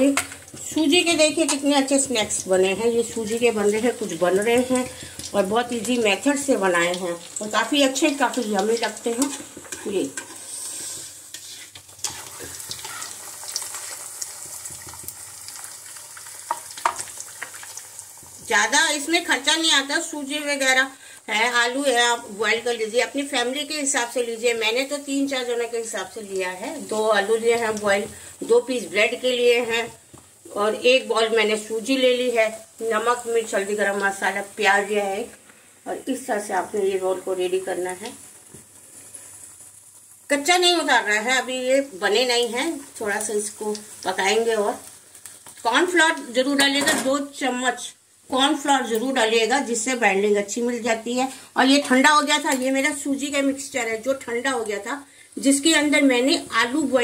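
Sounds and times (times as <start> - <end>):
sizzle of bubbling oil: 0.0 - 57.0.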